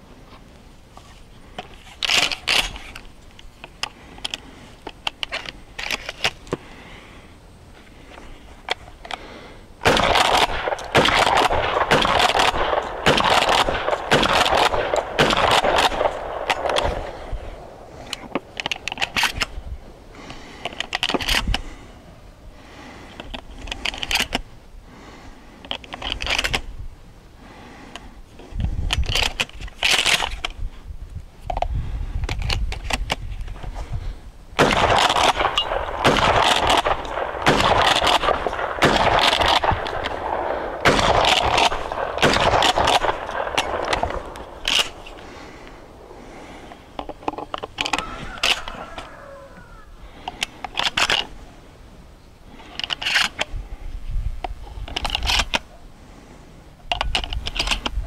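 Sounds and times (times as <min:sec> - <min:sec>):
shotgun firing: 0:09.8 - 0:17.9, 0:34.6 - 0:46.1.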